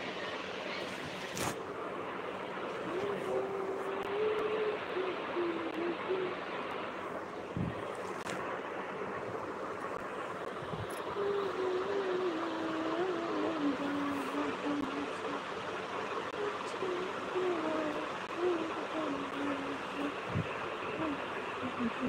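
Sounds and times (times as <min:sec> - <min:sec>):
steady rushing noise: 0:00.0 - 0:22.0
faint wavering voice-like tone: 0:01.9 - 0:08.4, 0:10.0 - 0:22.0.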